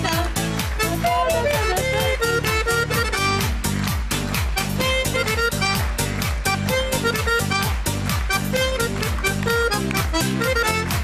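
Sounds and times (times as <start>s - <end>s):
button accordion playing lively tune: 0.0s - 11.0s.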